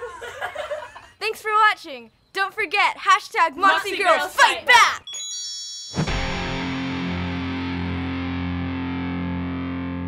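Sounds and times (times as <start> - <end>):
distorted electric guitar chord: 6.1 - 10.0.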